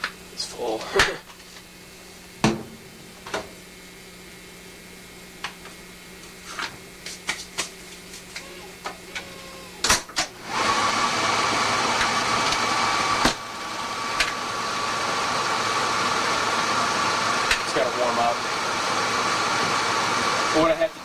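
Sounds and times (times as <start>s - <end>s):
photocopier whirring: 7.3s - 20.9s.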